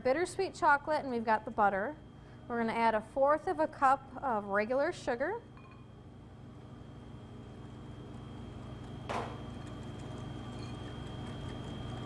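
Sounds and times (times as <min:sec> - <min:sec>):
steady low hum: 0:00.0 - 0:12.0
whisk stirring in ceramic bowl: 0:08.1 - 0:12.0.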